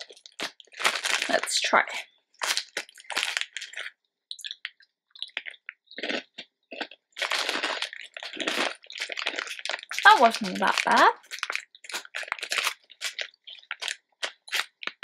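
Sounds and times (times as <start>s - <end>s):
crunchy snacks being chewed: 0.0s - 1.5s, 2.4s - 15.0s.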